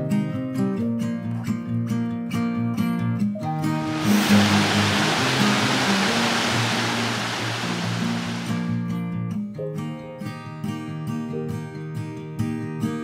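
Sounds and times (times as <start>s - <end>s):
stream rushing over boulders: 3.7s - 8.7s.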